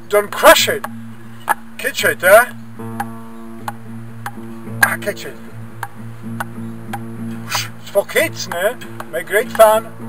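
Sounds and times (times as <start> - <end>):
background music with held notes: 0.0 - 10.0
table tennis ball tapping paddle: 3.0 - 5.0, 8.4 - 9.7.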